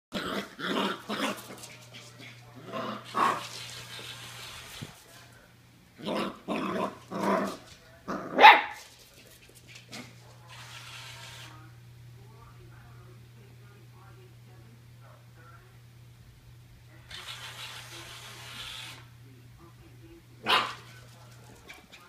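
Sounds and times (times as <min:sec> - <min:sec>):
puppy barking and growling: 0:00.1 - 0:01.7, 0:02.6 - 0:04.1, 0:06.0 - 0:08.8, 0:20.4 - 0:20.9.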